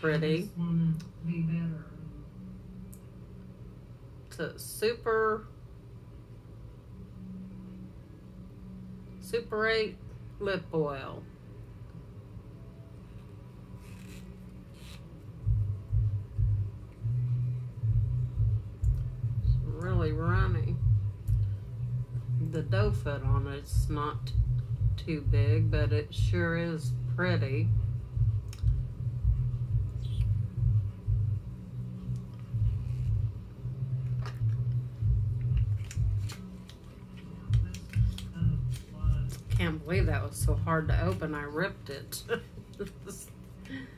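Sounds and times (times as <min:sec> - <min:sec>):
background music: 0:06.8 - 0:43.9
low rumbling thumps: 0:15.5 - 0:16.8, 0:22.7 - 0:26.7, 0:27.3 - 0:31.5, 0:34.4 - 0:36.2, 0:37.5 - 0:41.2
packaging being torn open: 0:35.8 - 0:39.5.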